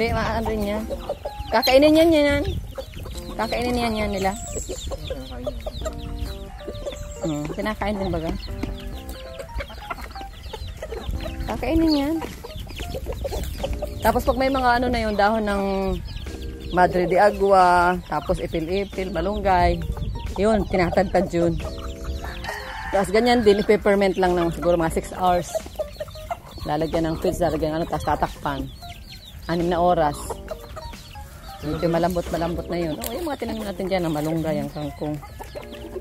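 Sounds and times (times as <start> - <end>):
chicks peeping: 0.0 - 36.0
hens clucking: 0.0 - 36.0.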